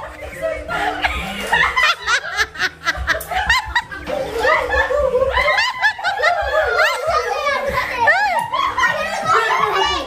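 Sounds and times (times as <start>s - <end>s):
people laughing and giggling: 0.0s - 10.0s.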